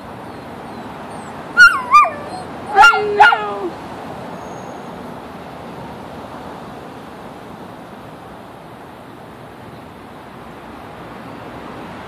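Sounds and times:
outdoor background noise: 0.0s - 12.0s
dog yipping and whining: 0.2s - 3.7s.

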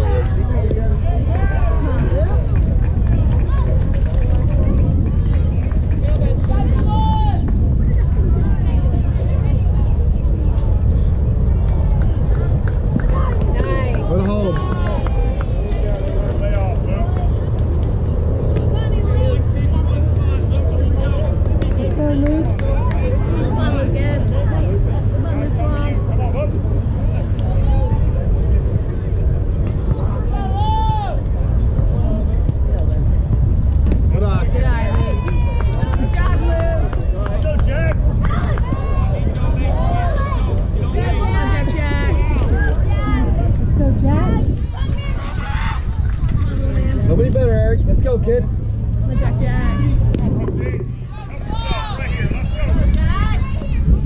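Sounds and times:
spectators talking and calling out: 0.0s - 54.0s
steady low rumble: 0.0s - 54.0s
long drawn-out shout: 30.3s - 31.2s.

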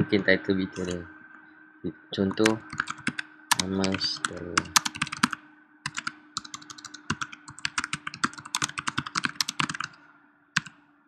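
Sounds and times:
faint steady hum: 0.0s - 11.0s
keyboard typing clicks: 2.2s - 10.0s, 10.6s - 10.8s.

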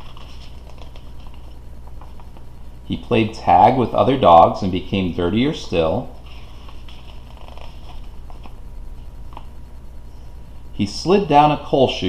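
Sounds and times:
paper page rustling: 0.0s - 2.5s, 6.1s - 9.5s
steady low hum: 0.0s - 12.0s.

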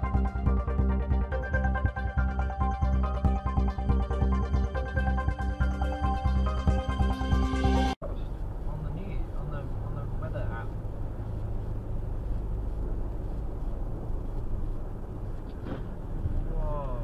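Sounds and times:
road and engine noise in car: 4.5s - 17.0s.

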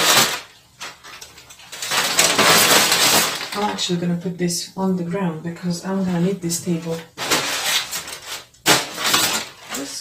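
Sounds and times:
packing paper rustling and crackling: 0.0s - 3.9s, 6.0s - 10.0s.

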